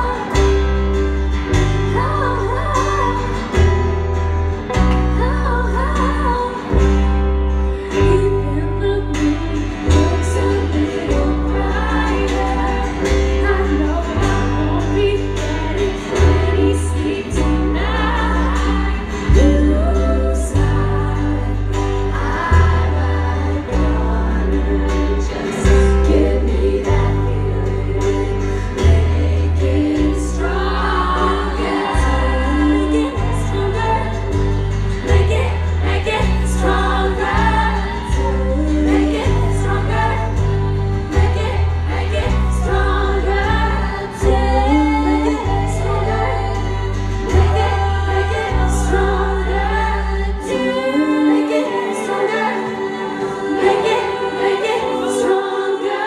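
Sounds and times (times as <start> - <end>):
held bass line: 0.0 - 52.7
guitars: 0.0 - 56.0
live pop band: 0.0 - 56.0
women singing together: 0.0 - 56.0.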